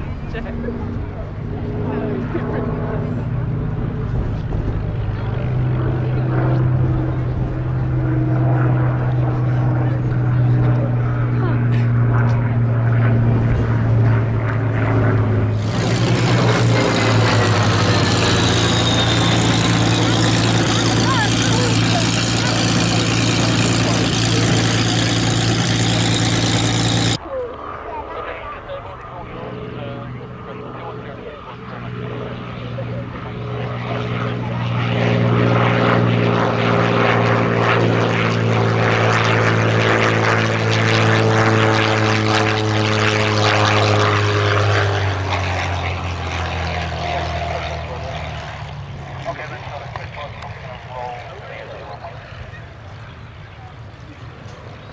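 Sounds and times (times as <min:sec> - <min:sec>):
propeller plane engine: 0:00.0 - 0:54.9.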